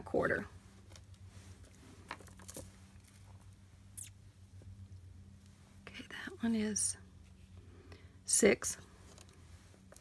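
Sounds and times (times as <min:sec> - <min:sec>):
low steady hum: 0:00.0 - 0:10.0
beaded jewelry clicking and rustling: 0:00.9 - 0:04.2.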